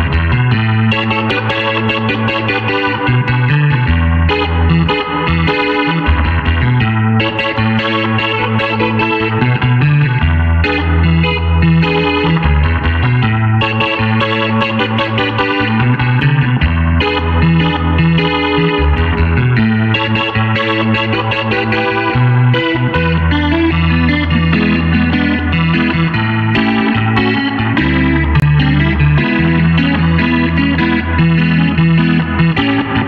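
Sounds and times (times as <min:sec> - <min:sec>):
clavinet bass line: 0:00.0 - 0:33.0
clavinet chord stabs: 0:00.0 - 0:33.0.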